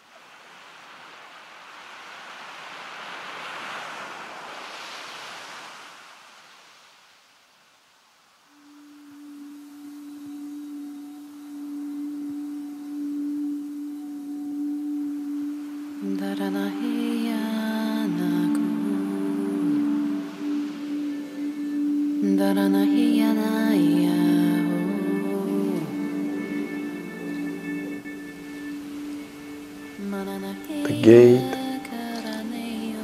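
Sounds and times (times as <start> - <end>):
soft rushing swell: 8.5 - 33.0.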